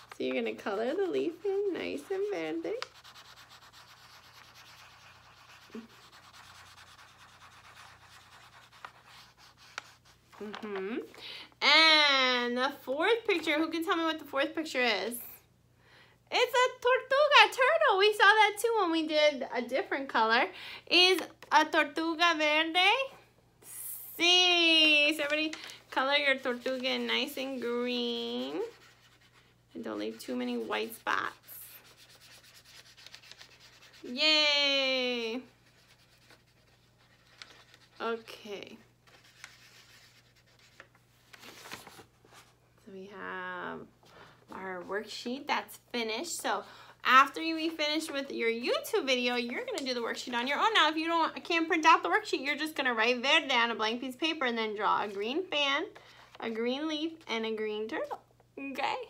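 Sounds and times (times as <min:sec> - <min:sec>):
marker scribbling on paper: 0:00.0 - 0:10.1, 0:25.9 - 0:34.3.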